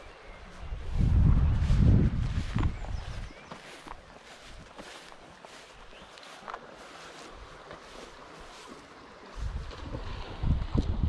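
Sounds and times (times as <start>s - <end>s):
footsteps on grass: 0.0s - 10.2s.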